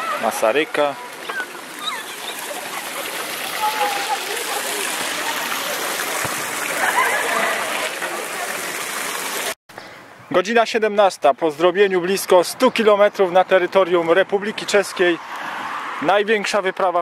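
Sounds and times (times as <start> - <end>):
fountain splashing into basin: 0.0 - 9.6.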